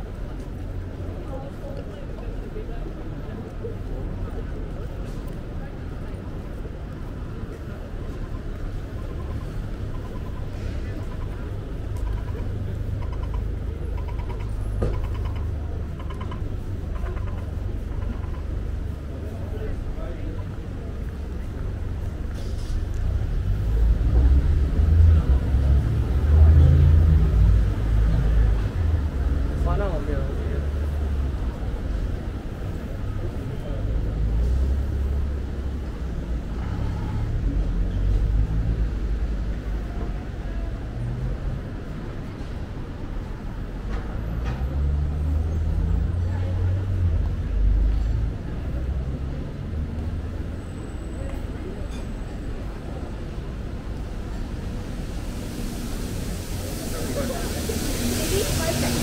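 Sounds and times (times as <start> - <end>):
faint voices of people: 0.0 - 59.0
vehicle engine rumble: 0.0 - 59.0
cars driving past: 3.6 - 59.0.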